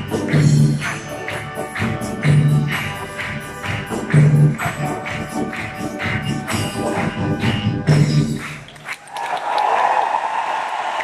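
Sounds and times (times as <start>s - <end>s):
orchestral music: 0.0s - 8.6s
audience applauding: 0.0s - 11.0s.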